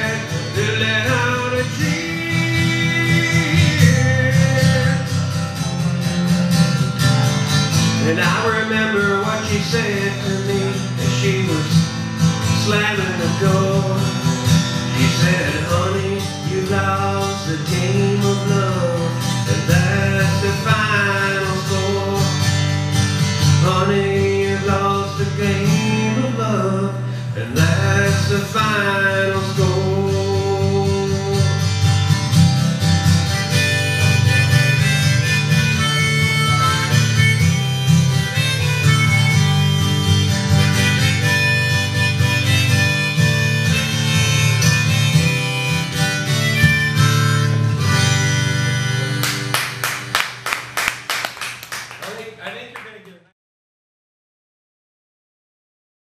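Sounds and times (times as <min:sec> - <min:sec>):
acoustic guitar strumming: 0:00.0 - 0:52.0.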